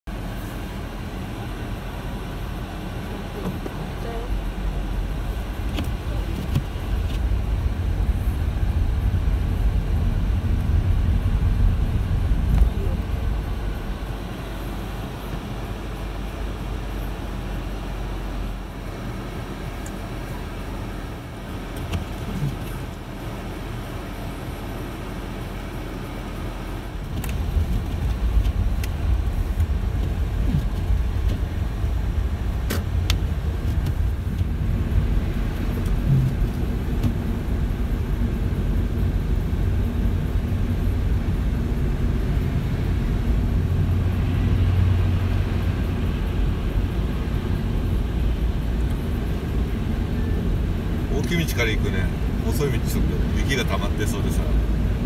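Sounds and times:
engine and tyres rumbling: 0.0 - 55.0.

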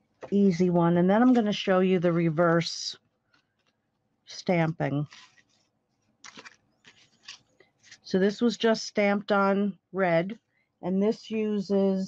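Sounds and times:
paper card rustling and scraping: 4.9 - 8.1.

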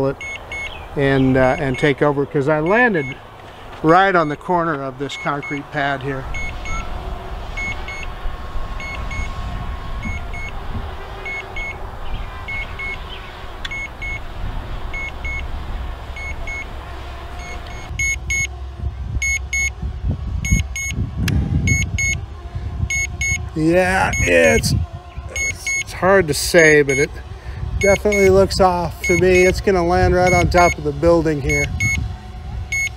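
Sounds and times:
wind rumble on microphone: 0.0 - 32.9
remote controller double beeps: 2.7 - 3.2, 6.4 - 6.9, 24.1 - 24.6, 25.4 - 25.9, 27.8 - 28.3.

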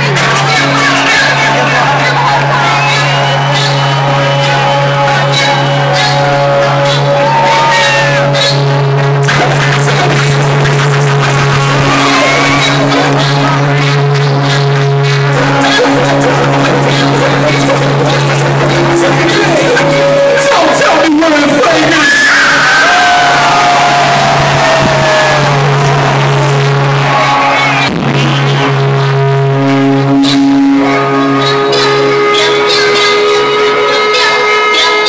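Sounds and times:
loud rock intro music droning: 0.0 - 20.7, 21.9 - 34.0
crowd shouting and cheering: 0.0 - 35.0.

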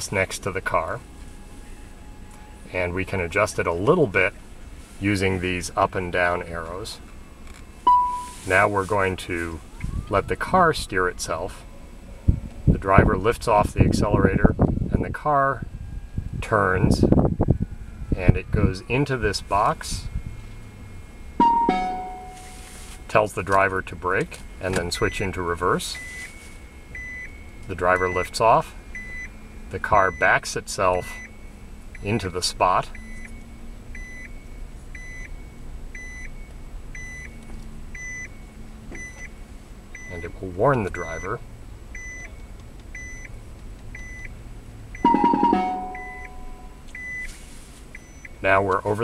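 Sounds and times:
short car parking beeps: 7.8 - 8.6, 20.1 - 23.1, 24.4 - 32.3, 32.9 - 48.4
two-note electronic chime: 7.9 - 8.5, 21.4 - 22.7, 45.0 - 46.8.

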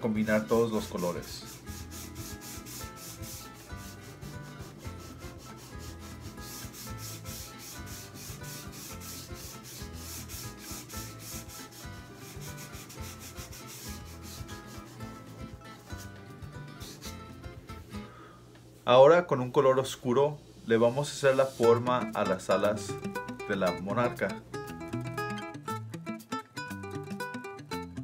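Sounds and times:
palm rubbing pastel on paper: 0.2 - 17.3, 20.9 - 21.8.

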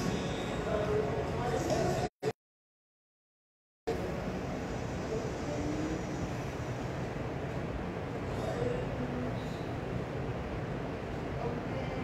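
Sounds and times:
low rumbling background noise: 0.0 - 2.1, 3.9 - 12.0.

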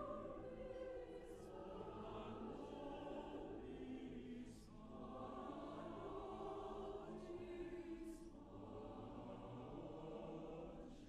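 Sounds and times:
mixed chorus singing softly: 0.0 - 11.0.

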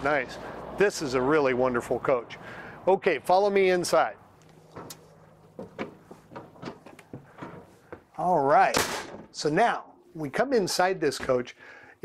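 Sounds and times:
footsteps climbing steps: 4.5 - 8.2.

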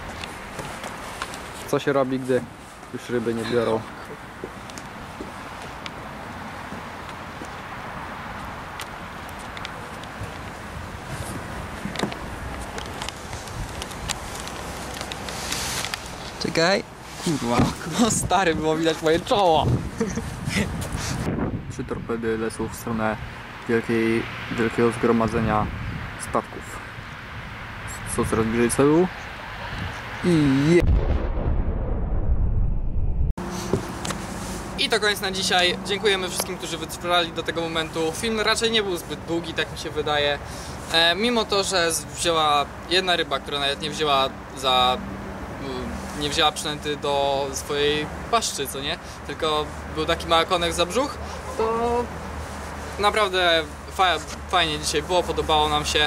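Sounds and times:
wind: 0.0 - 56.0
low hum: 30.4 - 33.4
explosion rumble: 30.6 - 33.4.

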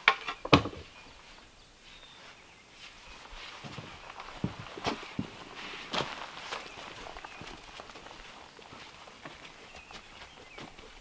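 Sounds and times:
footsteps on sticks and leaves: 0.0 - 11.0.

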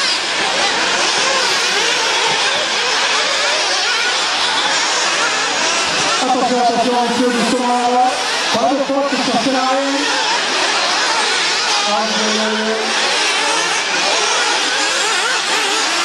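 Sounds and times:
small engines buzzing and whining: 0.0 - 16.0.

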